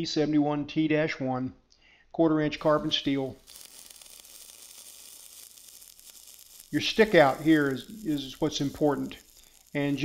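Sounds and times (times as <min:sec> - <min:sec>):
welding arc crackling hiss: 0:02.6 - 0:10.0.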